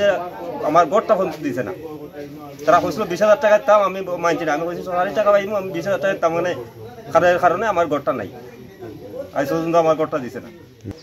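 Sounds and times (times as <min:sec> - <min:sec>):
man speaking: 0:00.0 - 0:11.0.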